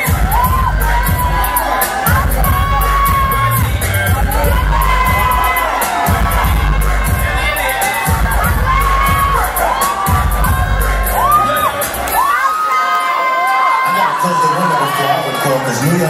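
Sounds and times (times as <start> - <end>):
dance music with heavy bass: 0.0 - 12.5
crowd cheering and screaming: 0.0 - 16.0.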